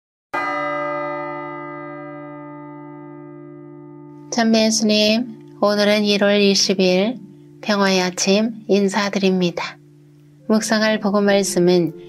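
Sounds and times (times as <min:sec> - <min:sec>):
bell ringing: 0:00.4 - 0:08.4.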